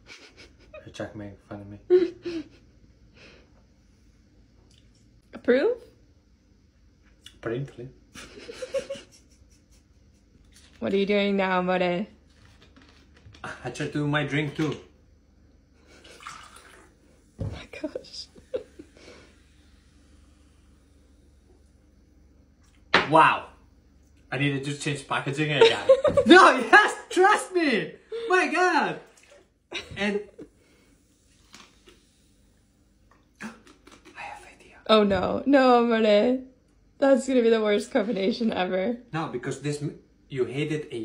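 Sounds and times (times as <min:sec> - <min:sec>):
soda pouring into plastic cup: 0:16.1 - 0:17.0
bottle set down on countertop: 0:17.4 - 0:17.8, 0:22.9 - 0:23.2.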